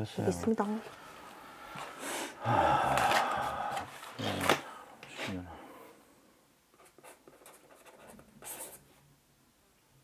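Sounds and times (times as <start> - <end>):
pen scratching on paper: 6.8 - 8.8.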